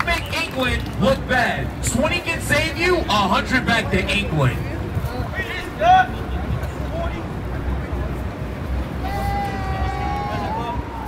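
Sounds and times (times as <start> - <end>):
crowd chatter: 0.0 - 11.0
low rumble of city traffic: 0.0 - 11.0.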